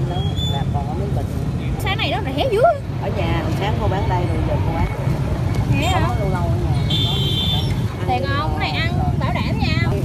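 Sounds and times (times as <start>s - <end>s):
motorbike traffic rumble: 0.0s - 10.0s.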